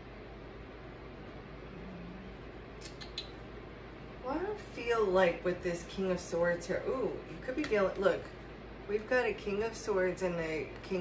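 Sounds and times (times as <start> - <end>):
faint high clicks: 2.8 - 3.4.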